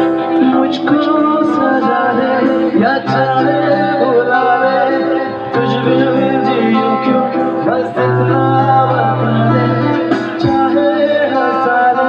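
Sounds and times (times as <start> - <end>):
acoustic guitar: 0.0 - 12.0
man singing into microphone: 0.0 - 12.0.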